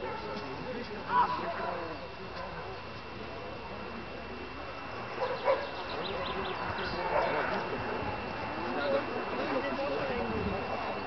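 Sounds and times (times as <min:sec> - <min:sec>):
dog barking: 0:00.0 - 0:00.4, 0:05.2 - 0:05.7, 0:07.0 - 0:07.5
spectators chattering: 0:00.0 - 0:11.0.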